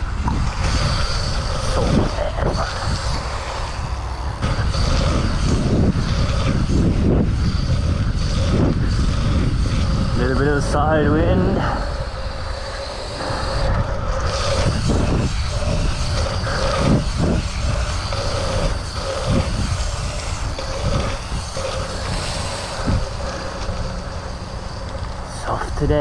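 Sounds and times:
bike tyres rolling: 0.0 - 26.0
wind buffeting microphone: 0.0 - 26.0.

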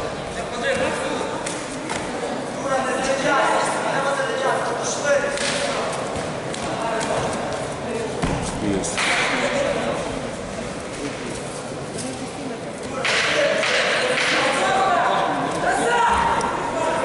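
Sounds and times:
people shouting: 13.4 - 17.0.

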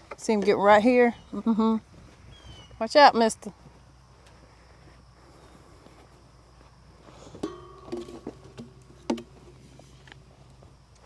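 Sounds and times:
rubber bucket knocks and scrapes: 7.4 - 10.1.

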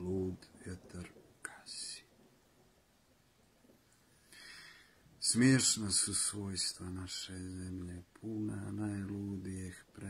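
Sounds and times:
man whispering: 0.0 - 2.2, 5.2 - 10.0.

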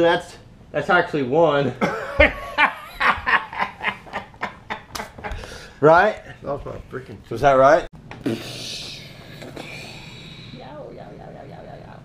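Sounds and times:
man laughing: 1.8 - 5.4.

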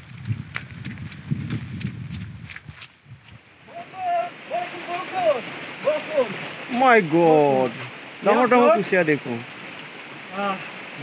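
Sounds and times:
hurried footsteps on grass: 0.0 - 3.6.

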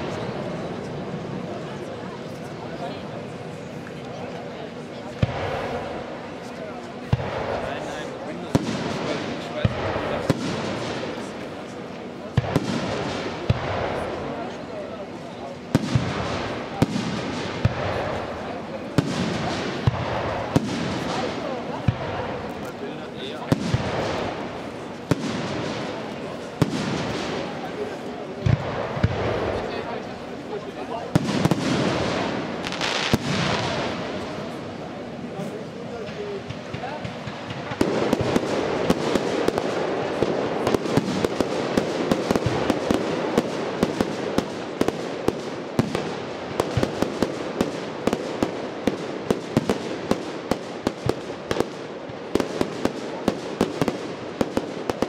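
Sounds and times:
noisy firework display wash: 0.0 - 55.0.

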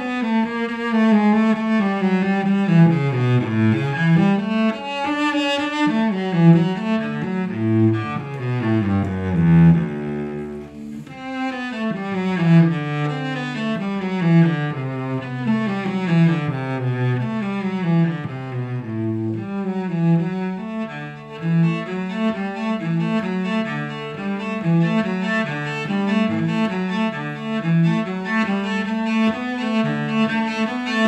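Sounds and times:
bowed cello melody: 0.0 - 31.0.

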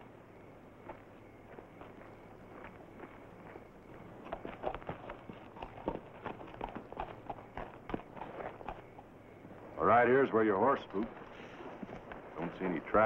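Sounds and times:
footsteps on dirt: 0.7 - 9.7, 10.9 - 12.8
horse hoofbeats on dirt: 0.7 - 13.0.

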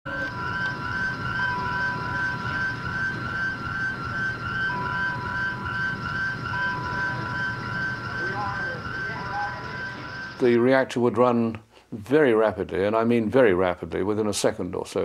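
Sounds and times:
electronic alarm warbling: 0.1 - 10.7
steady beeping tone: 0.1 - 10.8.

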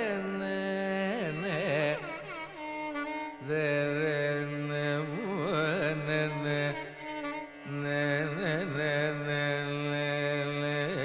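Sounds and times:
man singing long steady note: 3.3 - 11.0.

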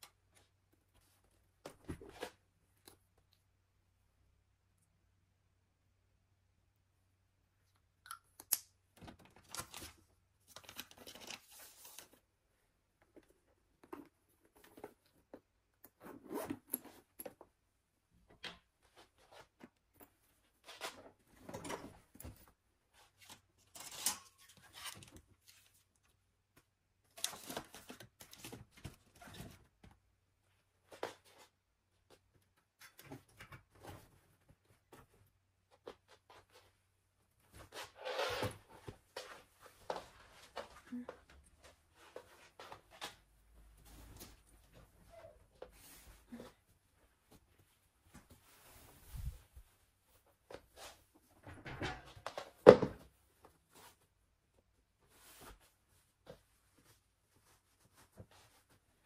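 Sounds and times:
rustling and rubbing: 41.6 - 51.4, 55.0 - 59.0.

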